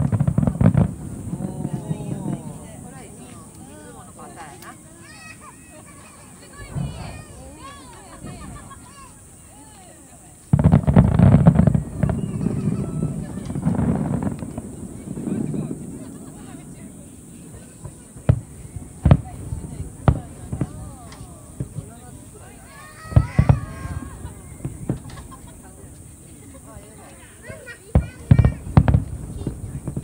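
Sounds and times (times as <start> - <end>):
fireworks booming: 0.0 - 30.0
people chattering: 0.0 - 30.0.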